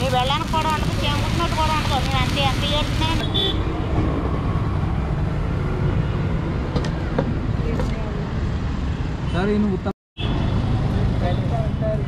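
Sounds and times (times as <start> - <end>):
road traffic rumble: 0.0 - 12.0.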